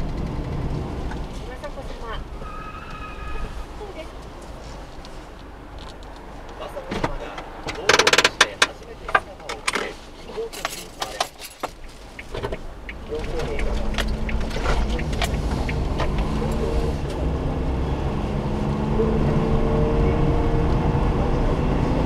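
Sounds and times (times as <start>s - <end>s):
clicks and rustling in van cab: 4.2s - 17.2s
small van engine running: 10.7s - 19.7s.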